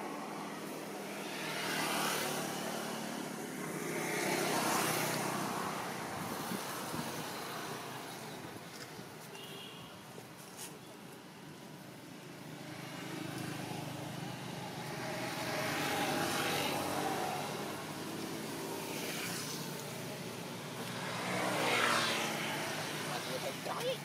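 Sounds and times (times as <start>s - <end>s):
motor vehicles passing by: 0.0s - 10.4s, 11.2s - 24.0s.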